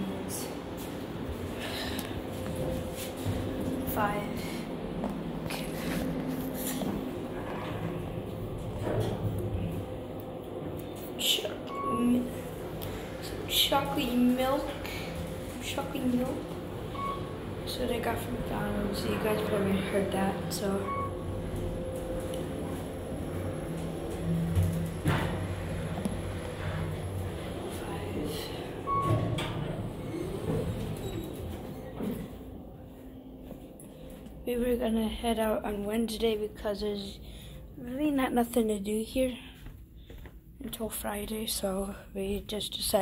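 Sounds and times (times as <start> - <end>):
elevator hum: 0.0 - 40.6.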